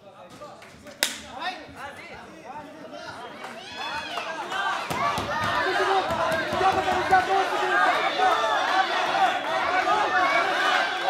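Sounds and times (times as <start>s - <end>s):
men shouting: 5.3s - 11.0s.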